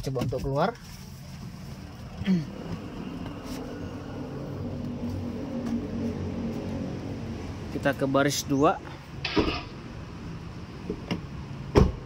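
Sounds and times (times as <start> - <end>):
low wavering hum: 1.6 - 7.7.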